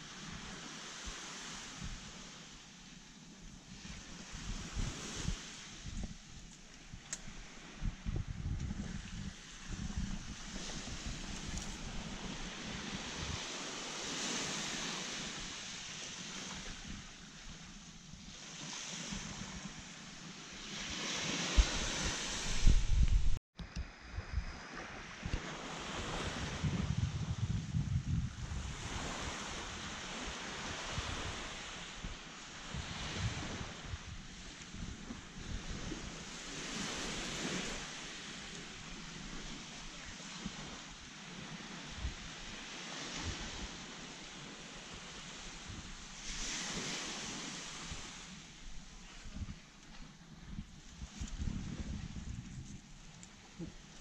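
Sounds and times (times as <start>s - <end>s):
small waves washing on beach: 0.0s - 54.0s
wind buffeting microphone: 3.6s - 40.8s, 41.4s - 54.0s.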